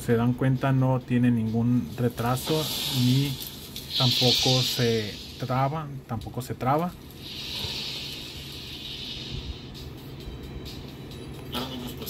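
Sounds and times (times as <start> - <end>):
hissing whoosh: 2.0 - 5.8, 7.2 - 9.9
music from small speaker: 7.6 - 12.0.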